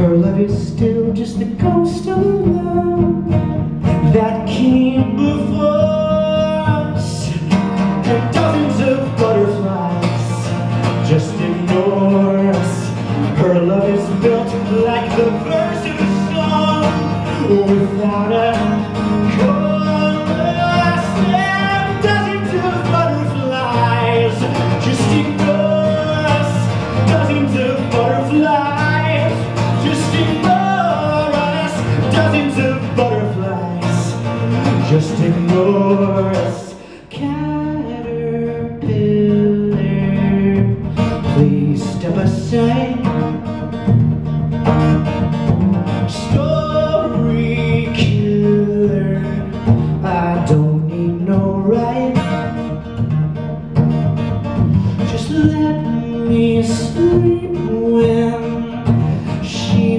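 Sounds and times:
man singing: 0.0s - 43.8s, 45.7s - 52.9s, 54.8s - 59.9s
acoustic guitar strumming: 0.0s - 59.9s.

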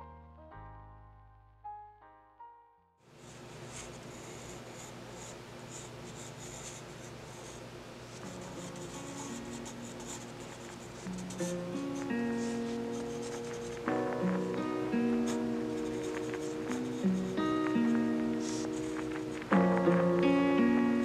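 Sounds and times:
pencil scratching on paper: 3.2s - 19.5s
music with plucked notes: 11.3s - 21.0s.

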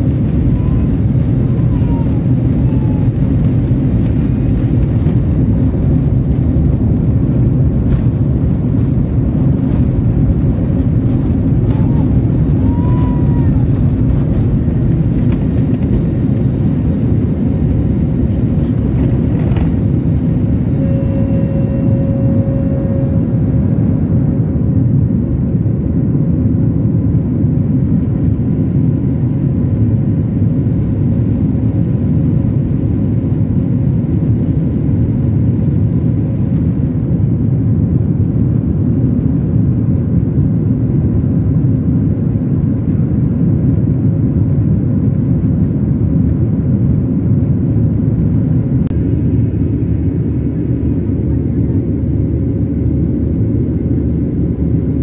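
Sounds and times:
faint steady hum: 0.0s - 25.6s
jet engines and airflow rushing: 0.0s - 55.0s.

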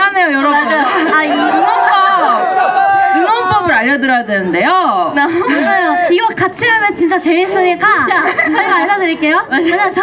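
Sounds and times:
women talking over sound system: 0.0s - 2.5s, 3.2s - 10.0s.

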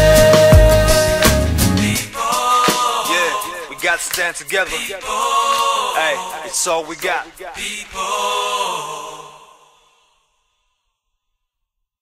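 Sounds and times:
held sung note with backing music: 0.0s - 10.0s.

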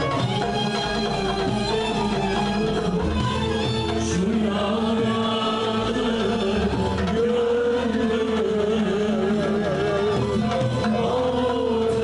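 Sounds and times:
instrumental ensemble: 0.0s - 12.0s
man singing: 0.7s - 12.0s.

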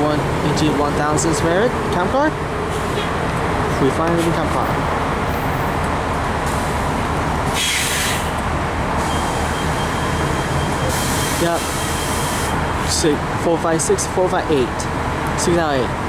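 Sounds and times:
short hiss: 7.5s - 8.3s
high wheel squeal: 7.5s - 8.4s, 9.0s - 13.0s.

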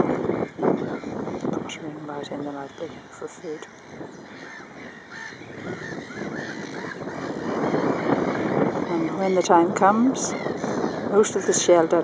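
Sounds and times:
gulls and jackdaws calling: 0.0s - 12.0s.

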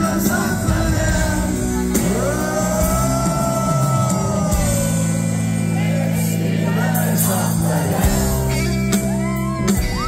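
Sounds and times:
falling bass line: 0.0s - 10.0s
rock band playing live: 0.0s - 10.0s.

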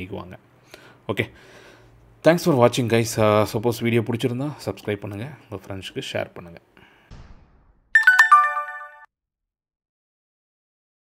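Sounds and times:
bell-like chime notes: 8.0s - 9.1s.

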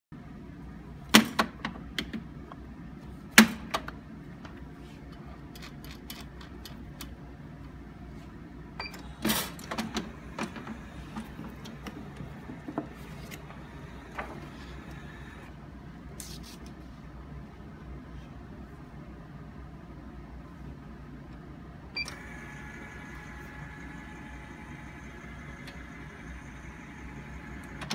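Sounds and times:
steady low hum: 4.0s - 27.9s.

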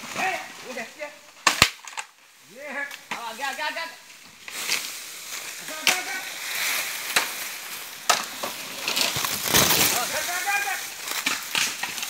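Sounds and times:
dry bamboo snapping: 1.3s - 2.2s, 4.4s - 12.0s.

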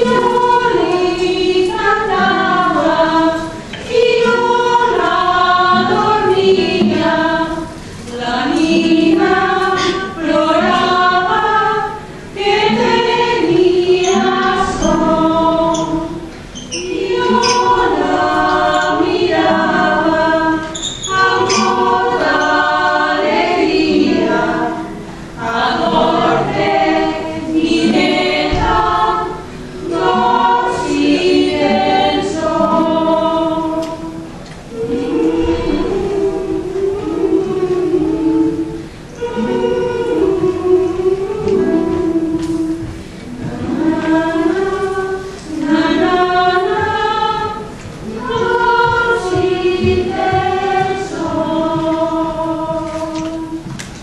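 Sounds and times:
group singing folk song: 0.0s - 54.0s.

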